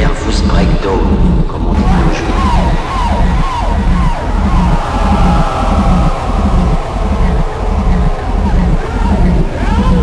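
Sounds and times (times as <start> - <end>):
distorted bass pulsing: 0.0 - 10.0.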